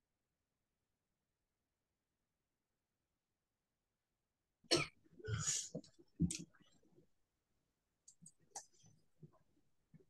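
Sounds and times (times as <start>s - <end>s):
person coughing: 4.7s - 5.8s.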